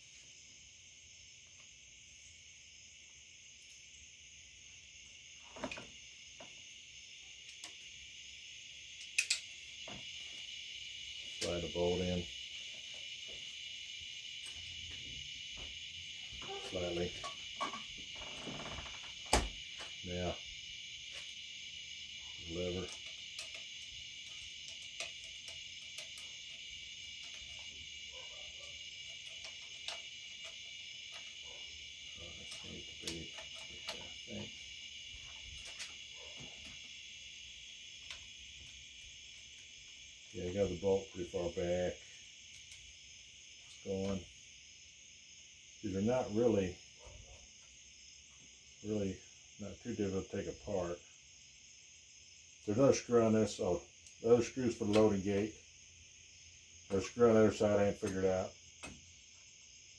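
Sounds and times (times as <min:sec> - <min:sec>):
high insect chirring: 0:00.0 - 0:59.9
metallic clicks of rifle parts: 0:09.0 - 0:09.5.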